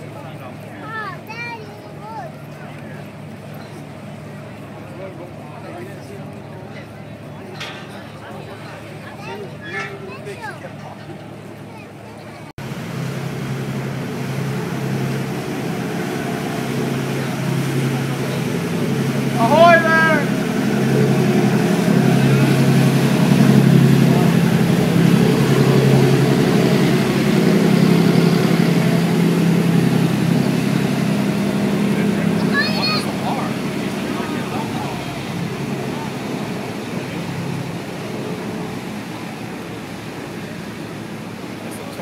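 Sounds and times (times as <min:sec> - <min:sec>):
boat engine humming: 0:00.0 - 0:42.0.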